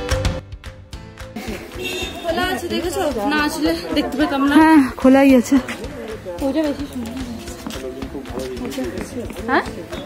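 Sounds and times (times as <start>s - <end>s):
people chattering: 1.4s - 10.0s.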